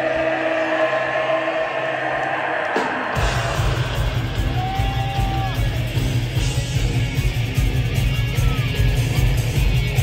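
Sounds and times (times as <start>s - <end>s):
concert crowd noise: 0.0s - 10.0s.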